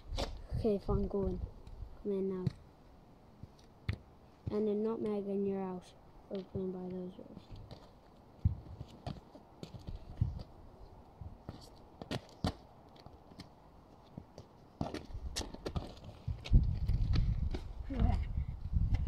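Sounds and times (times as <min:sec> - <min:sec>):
shoes on tarmac: 0:03.3 - 0:18.2.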